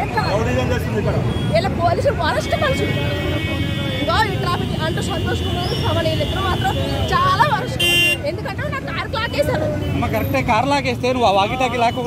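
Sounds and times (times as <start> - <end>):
crowd voices: 0.0 - 12.0
street traffic noise: 0.0 - 12.0
vehicle horn toot: 2.4 - 8.3.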